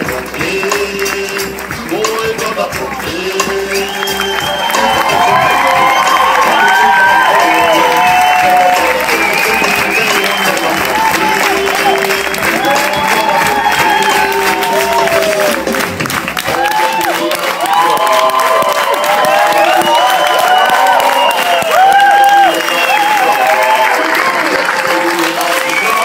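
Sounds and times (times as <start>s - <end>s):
audience applauding: 0.0s - 26.0s
runway show music: 0.0s - 26.0s.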